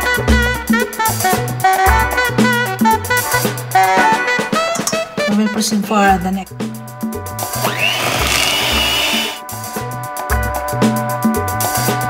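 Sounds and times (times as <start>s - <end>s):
background music with bass: 0.0s - 5.4s, 6.1s - 12.0s
electric hand mixer whining: 7.5s - 9.4s.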